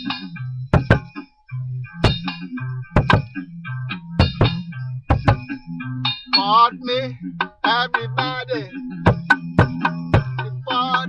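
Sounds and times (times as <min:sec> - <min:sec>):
repeating low bass note: 0:00.0 - 0:11.0
ringing tones: 0:00.0 - 0:11.0
metallic clanging drum hits: 0:00.8 - 0:01.2, 0:02.0 - 0:03.3, 0:04.2 - 0:05.5, 0:09.1 - 0:10.4.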